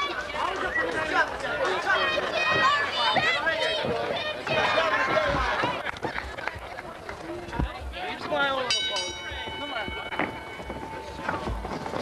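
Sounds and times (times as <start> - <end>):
crowd shouts and voices: 0.0 - 12.0.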